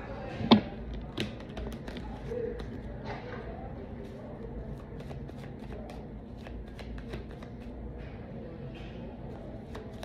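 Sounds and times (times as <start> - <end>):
cards being shuffled: 4.8 - 7.7.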